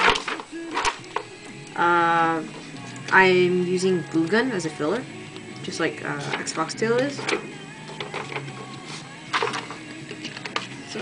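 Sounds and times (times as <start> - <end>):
paper rustling: 0.0 - 1.2.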